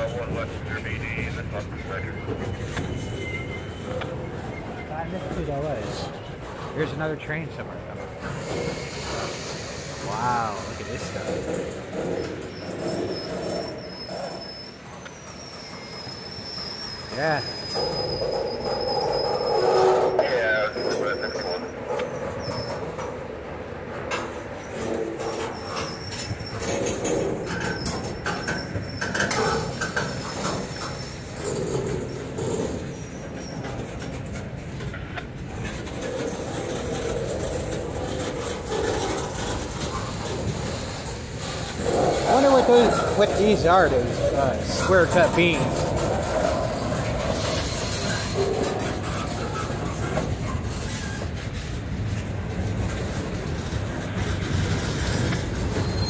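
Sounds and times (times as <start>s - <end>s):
high-pitched wheel squeal: 0.0s - 6.9s, 8.0s - 23.1s, 24.1s - 51.8s, 53.5s - 56.0s
train wheels clicking over rails: 0.0s - 56.0s.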